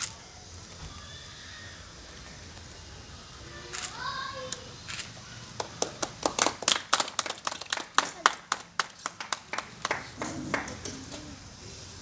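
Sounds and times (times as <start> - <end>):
people clapping: 5.5 - 11.2.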